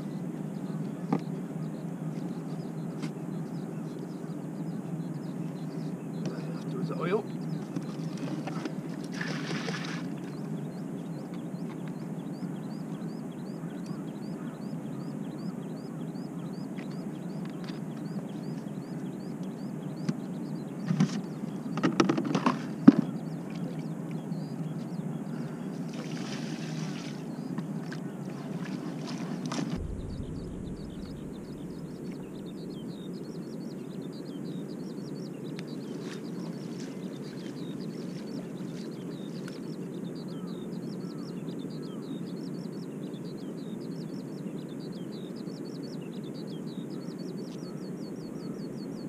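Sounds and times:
low outdoor rumble: 22.6 - 37.2.

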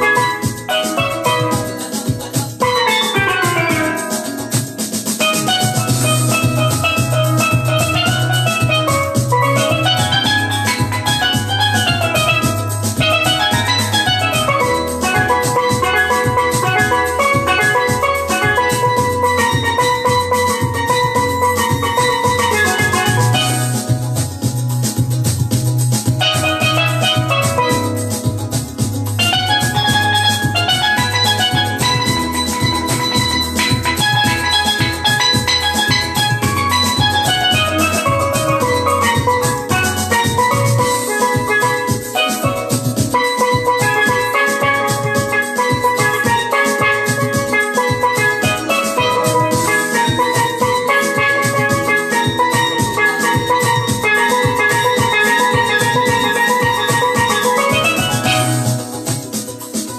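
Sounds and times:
drum beat: 0.0 - 59.9
steel pan notes: 0.0 - 59.9
low bass sound: 5.4 - 59.0.

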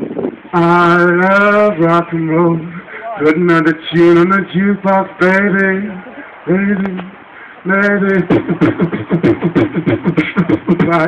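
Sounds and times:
person singing: 0.6 - 11.0
man beatboxing: 6.6 - 11.0.

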